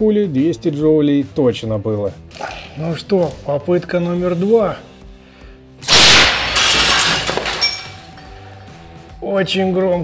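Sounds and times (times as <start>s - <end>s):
glass shattering: 5.8s - 8.5s
loud gunshot bang: 5.9s - 6.6s
glass shards tinkling: 6.2s - 8.7s.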